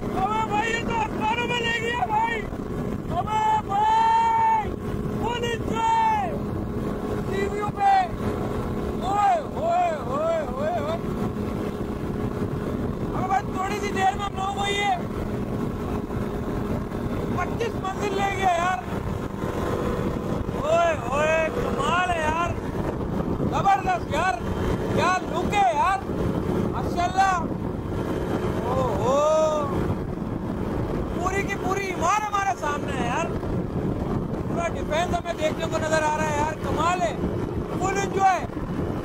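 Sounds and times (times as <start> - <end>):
paramotor engine running: 0.0 - 39.0
wind on microphone: 0.0 - 39.0.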